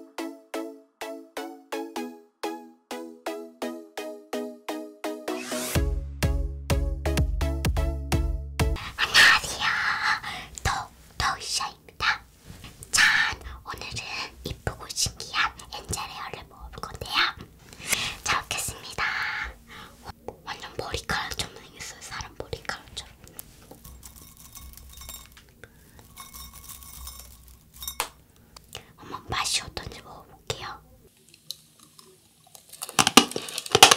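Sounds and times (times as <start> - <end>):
girl whispering: 8.8 - 12.3, 12.9 - 23.3, 28.8 - 31.1
candy clicks: 31.1 - 33.9.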